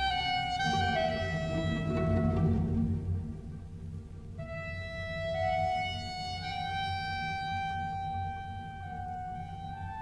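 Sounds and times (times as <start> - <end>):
orchestral classical music: 0.0 - 7.8.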